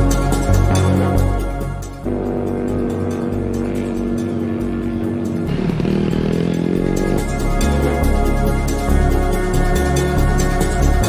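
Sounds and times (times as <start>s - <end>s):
background music: 0.0s - 11.0s
small engine running: 2.1s - 11.0s.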